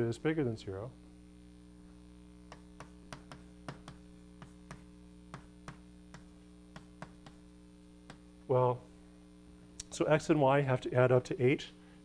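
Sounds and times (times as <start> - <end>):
electrical hum: 0.0 - 12.0
chalk tapping on blackboard: 2.5 - 8.3.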